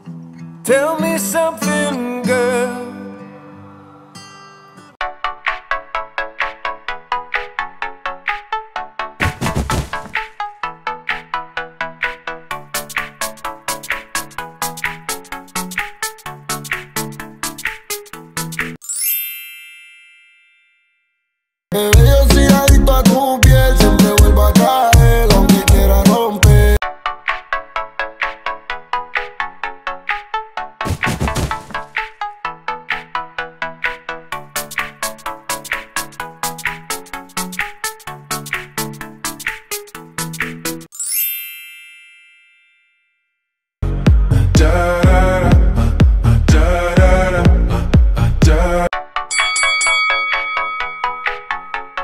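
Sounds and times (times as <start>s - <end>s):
electronic music with struck notes: 10.0s - 18.8s, 21.8s - 30.9s, 31.6s - 40.9s
bright bell-like ding: 19.0s - 21.0s, 41.0s - 43.1s, 49.3s - 52.0s
loud song: 21.7s - 26.8s
loud bass-heavy song: 21.8s - 26.8s, 43.8s - 48.9s.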